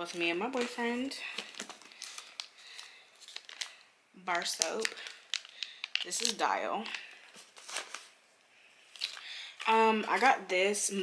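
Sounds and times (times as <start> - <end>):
packaging crinkling and rustling: 0.0 - 8.2, 8.8 - 10.2.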